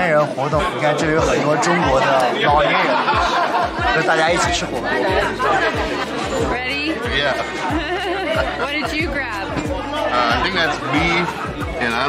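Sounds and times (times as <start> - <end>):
background music with steady beat: 0.0 - 12.0
people chattering: 0.0 - 12.0.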